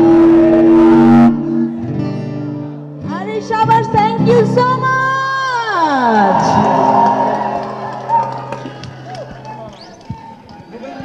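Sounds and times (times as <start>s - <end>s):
crowd noise burst: 6.0s - 10.3s
live band holding a chord: 6.2s - 9.5s.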